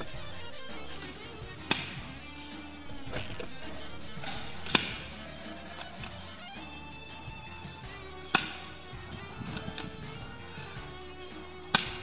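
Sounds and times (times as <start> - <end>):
background music: 0.0 - 12.0
airsoft gun cracks: 1.0 - 2.0, 4.2 - 5.1, 8.3 - 8.7, 11.7 - 12.0.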